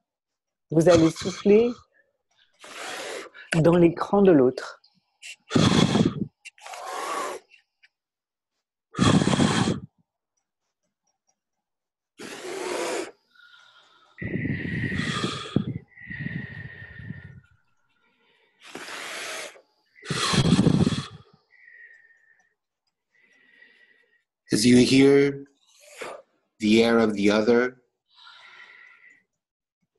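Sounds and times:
breath puffs into microphones: 5.2s - 7.6s, 9.0s - 9.9s, 13.5s - 17.5s, 18.6s - 21.3s.

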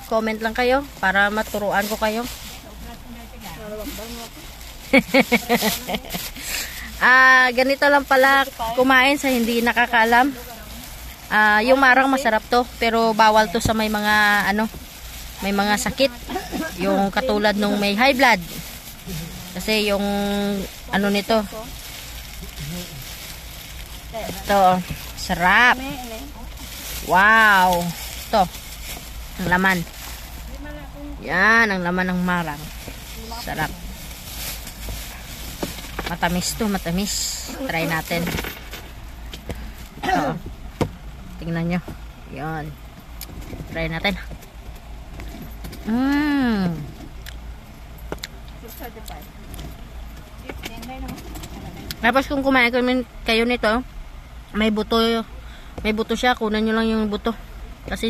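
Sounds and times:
low background hum and hiss: 0.0s - 58.0s.

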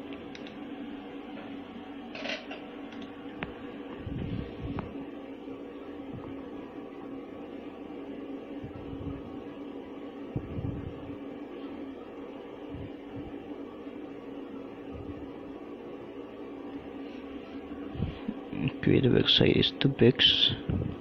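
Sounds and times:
low machine hum: 0.0s - 21.0s.

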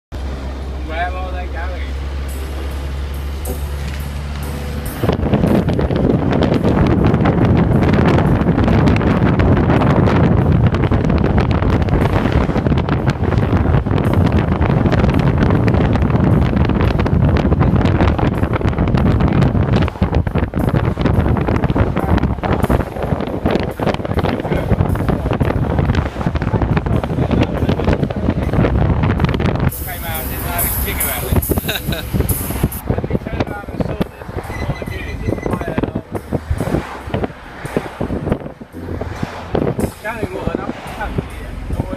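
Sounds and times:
road noise: 0.1s - 41.9s
ambulance engine drone: 0.2s - 33.3s
wind buffeting microphone: 1.9s - 41.9s.

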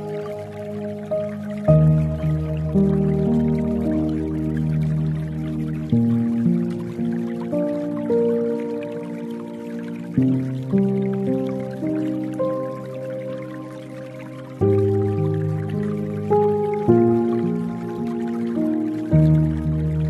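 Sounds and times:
faint dripping water: 0.0s - 20.0s
soft slow piano music: 0.0s - 20.0s.

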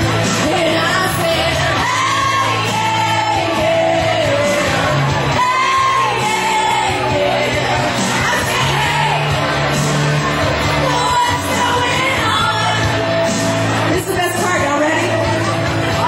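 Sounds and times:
person singing karaoke: 0.0s - 16.0s
pop backing track: 0.0s - 16.0s.

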